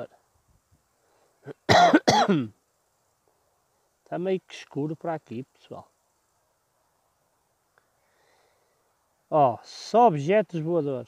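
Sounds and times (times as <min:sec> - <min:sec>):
man coughing: 0:01.5 - 0:02.5.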